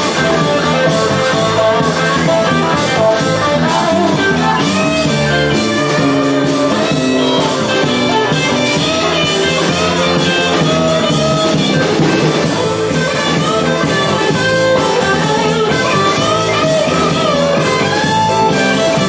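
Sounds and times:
drum kit steady beat: 0.0 - 19.0
lead electric guitar: 0.0 - 19.0
rhythm guitar: 0.0 - 19.0.

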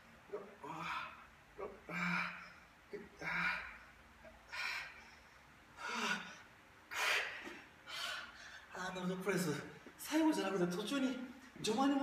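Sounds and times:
man breathing hard: 0.6 - 8.7.

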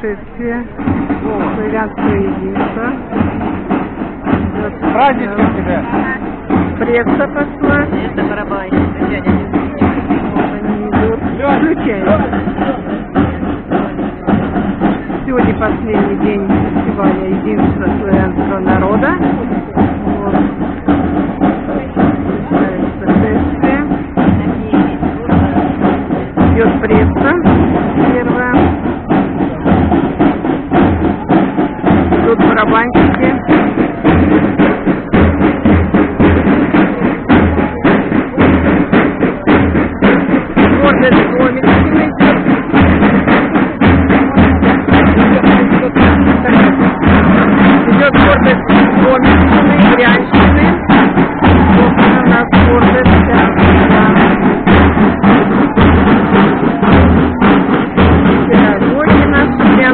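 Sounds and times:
people talking: 0.0 - 3.3, 4.4 - 28.8, 32.1 - 59.9
music with bass drum beat: 0.0 - 59.9.

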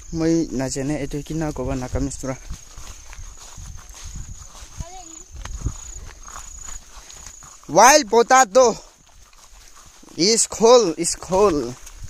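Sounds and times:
footsteps through dry undergrowth: 0.0 - 12.0.

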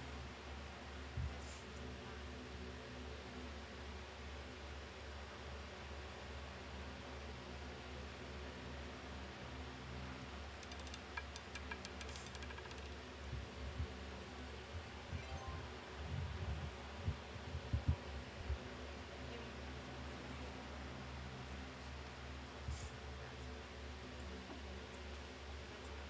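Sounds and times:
faint low hum: 0.0 - 26.0
roulette ball clattering: 10.6 - 12.9.

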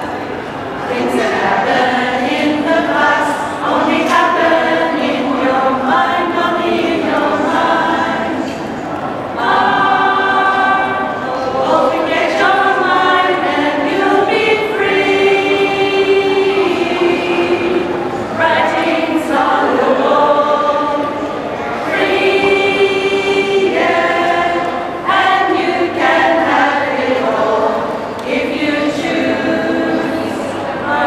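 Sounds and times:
mixed choir singing: 0.0 - 31.0.

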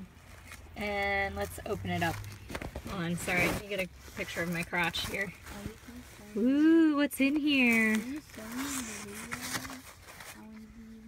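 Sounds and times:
paper wrapping rustling: 0.1 - 6.6, 7.4 - 11.0
cloth bag rustling: 0.2 - 6.6, 7.5 - 10.7.

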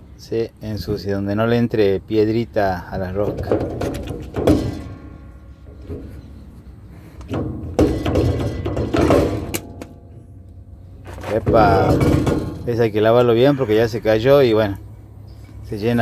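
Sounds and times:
metal knocks and scrapes: 3.2 - 10.4, 11.0 - 13.1.

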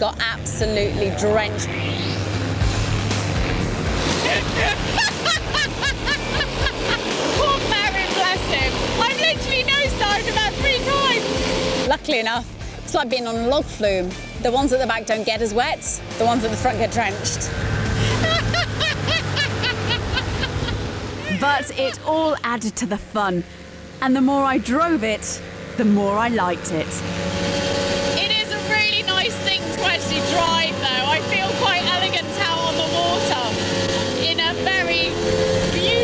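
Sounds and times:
boat motor drone: 0.0 - 36.0
rushing water and sea spray: 3.0 - 12.0, 17.5 - 22.1
person laughing hard: 4.2 - 7.1, 18.0 - 22.1
wind and spray rushing: 17.4 - 21.2.

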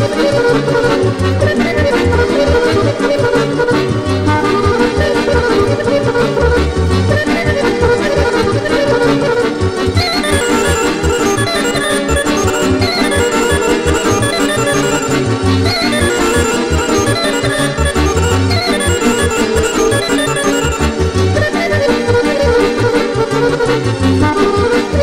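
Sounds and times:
accordion lead melody: 0.0 - 25.0.

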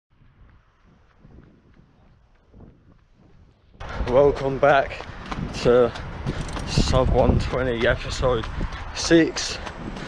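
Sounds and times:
faint wind buffeting microphone: 0.1 - 10.0.

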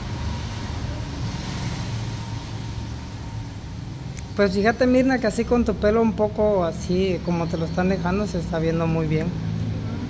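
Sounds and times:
hiss of passing traffic: 0.0 - 10.0.

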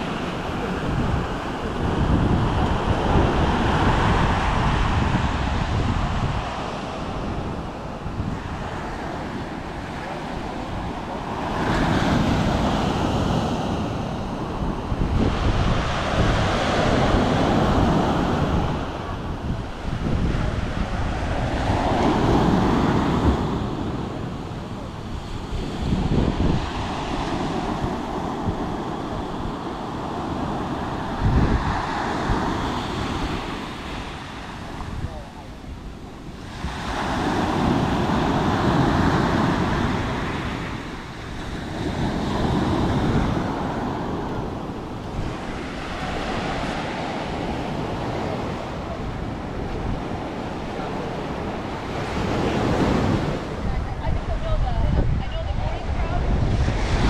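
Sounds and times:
waves breaking on shore: 0.0 - 57.0
wind buffeting microphone: 0.0 - 57.0.

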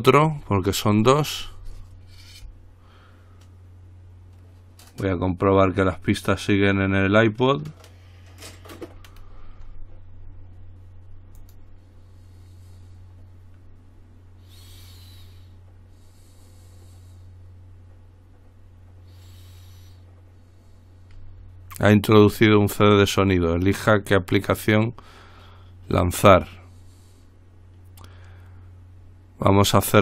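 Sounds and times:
low electrical hum: 0.0 - 30.0
disc rubbing while handled: 1.6 - 2.6.

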